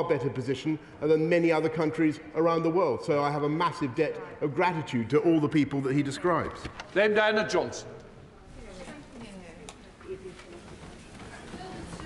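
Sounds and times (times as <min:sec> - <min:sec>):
murmur of many voices: 0:00.0 - 0:12.0.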